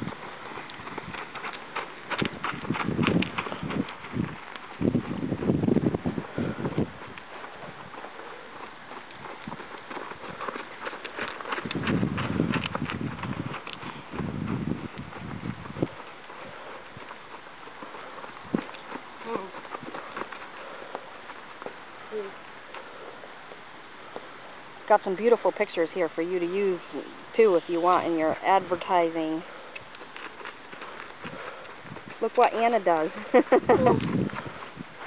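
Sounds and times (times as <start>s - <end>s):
horse hoofbeats on sand: 0.0s - 35.0s
low rumbles: 0.0s - 35.0s.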